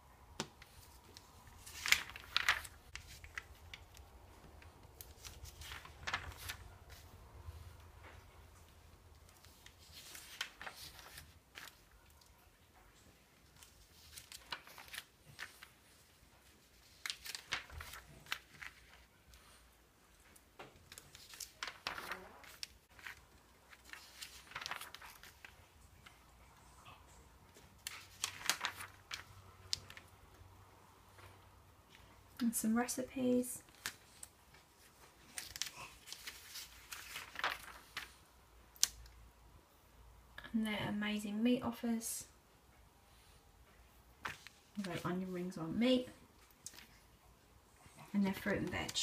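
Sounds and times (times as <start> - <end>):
magazine pages rustling: 0.4 - 26.7, 27.5 - 30.3, 31.1 - 39.1, 44.1 - 47.1, 48.1 - 49.0.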